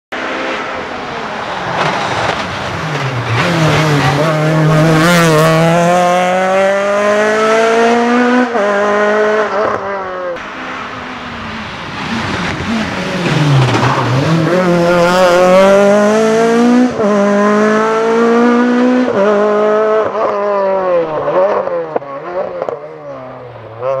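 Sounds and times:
rally car engine revving: 0:00.1 - 0:24.0.

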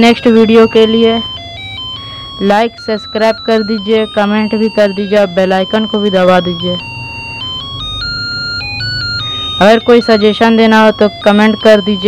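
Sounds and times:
electronic melody from small loudspeaker: 0:00.0 - 0:12.0.

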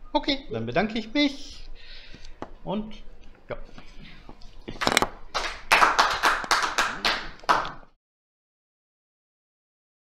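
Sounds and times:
audience applauding: 0:05.3 - 0:07.9.

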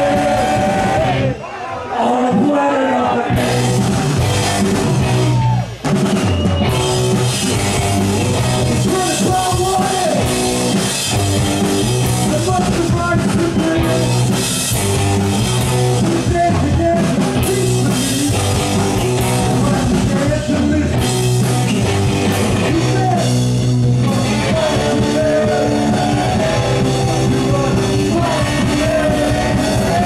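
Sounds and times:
live rock band playing: 0:00.0 - 0:01.4, 0:03.3 - 0:30.0.

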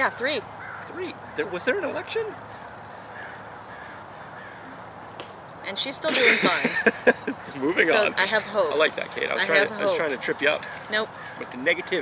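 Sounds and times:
faint caw-like bird calls: 0:00.0 - 0:01.4, 0:02.4 - 0:05.2, 0:10.6 - 0:12.0
steady outdoor hum: 0:00.0 - 0:12.0.

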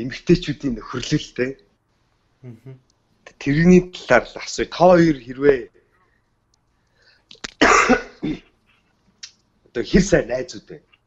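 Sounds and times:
person coughing: 0:07.6 - 0:08.5.

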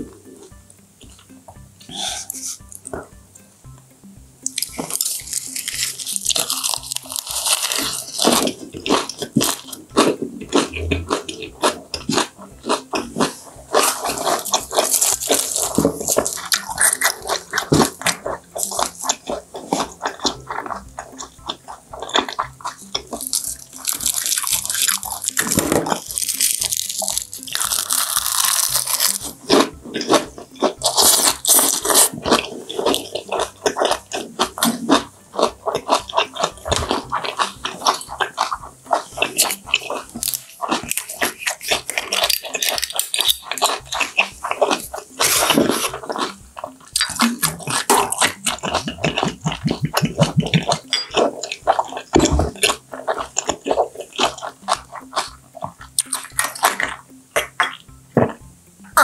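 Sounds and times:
wet crunching of leaves: 0:04.5 - 0:08.6, 0:23.1 - 0:30.1
soft squishy bites of fish: 0:22.1 - 0:29.3.

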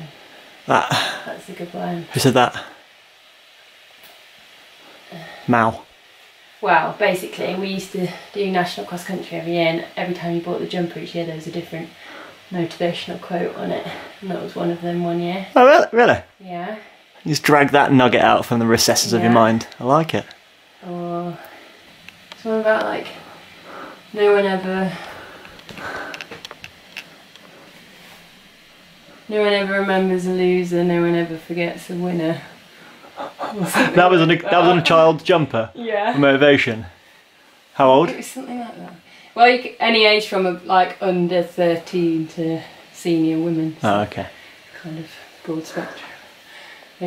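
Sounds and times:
faint steady hiss: 0:00.0 - 0:47.0
faint clicks: 0:25.0 - 0:27.5.

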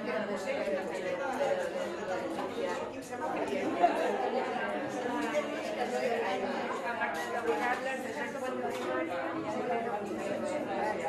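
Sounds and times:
chatter of many people: 0:00.0 - 0:11.0.

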